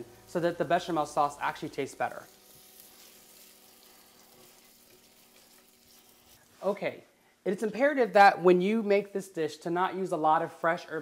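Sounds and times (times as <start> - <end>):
onions sizzling in a saucepan: 0.0 - 8.1
stirring in a saucepan: 0.2 - 7.4.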